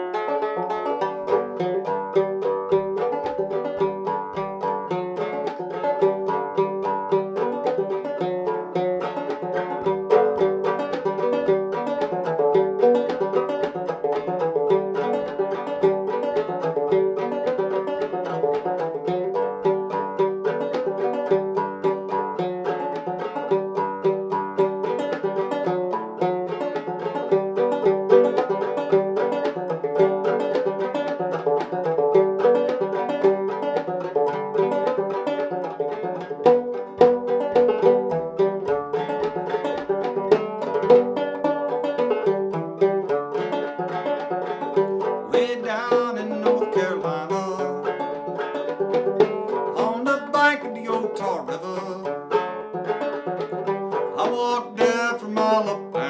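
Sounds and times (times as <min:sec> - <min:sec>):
banjo plucked notes: 0:00.0 - 0:56.0.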